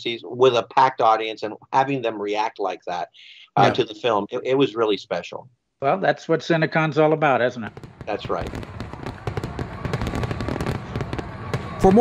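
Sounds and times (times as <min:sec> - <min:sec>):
fireworks crackling and popping: 0:07.6 - 0:12.0.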